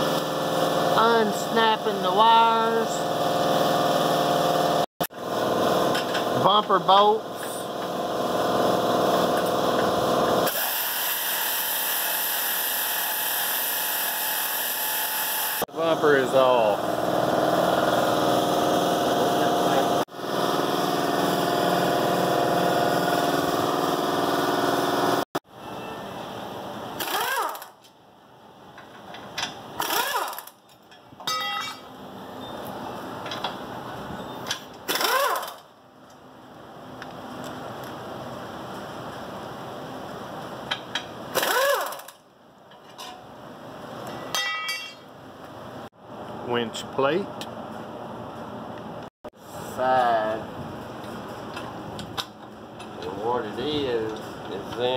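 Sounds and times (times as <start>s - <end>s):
pneumatic impact wrench: 8.6s - 15.6s, 27.0s - 27.9s, 29.8s - 30.6s, 34.5s - 35.7s, 41.3s - 42.2s.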